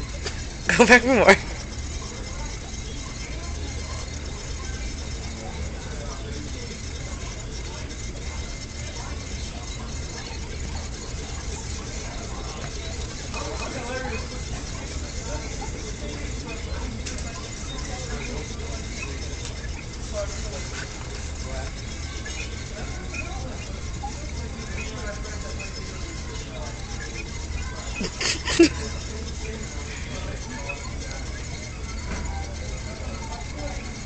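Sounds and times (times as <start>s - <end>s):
faint voices: 0.0s - 34.0s
plastic exercise wheel spinning: 0.0s - 34.0s.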